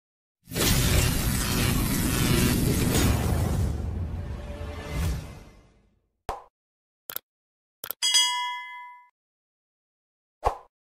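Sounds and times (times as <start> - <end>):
notification bell ding: 8.0 - 9.1.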